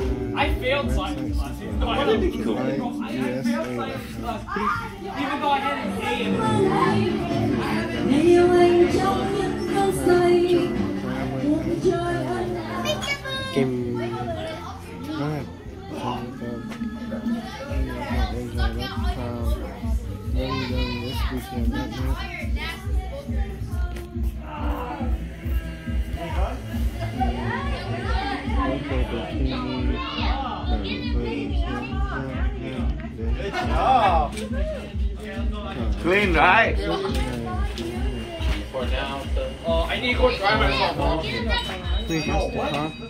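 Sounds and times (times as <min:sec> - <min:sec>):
steady bass beat: 0:00.0 - 0:04.6, 0:16.2 - 0:42.7
music: 0:00.0 - 0:43.0
voices talking: 0:00.0 - 0:43.0.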